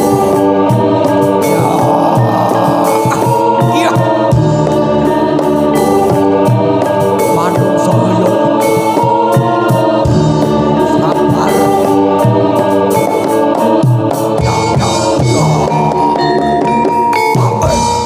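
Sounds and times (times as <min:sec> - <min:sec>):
people singing: 0:00.0 - 0:17.9
organ-like keyboard tones: 0:00.9 - 0:04.9
drum and percussion strokes: 0:01.0 - 0:04.8, 0:13.0 - 0:18.0
bass line: 0:01.2 - 0:04.6.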